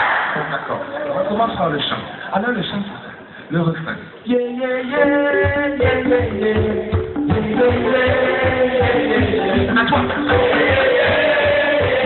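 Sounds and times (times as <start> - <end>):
live concert music: 4.3 - 12.0
bass drum beat: 5.4 - 12.0.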